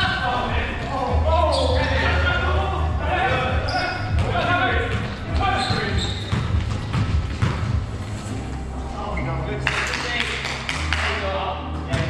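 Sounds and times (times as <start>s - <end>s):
players' voices: 0.0s - 12.0s
basketball bouncing on wooden floor: 4.1s - 7.8s.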